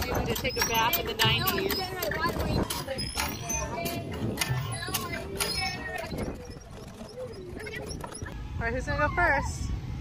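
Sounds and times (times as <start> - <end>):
water gushing from hand pump: 0.0 - 8.3
children's voices and calls: 0.0 - 9.8.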